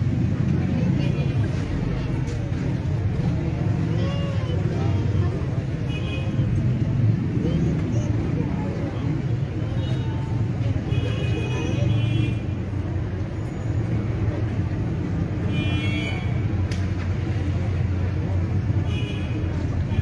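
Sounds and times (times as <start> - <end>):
low traffic rumble: 0.0 - 20.0.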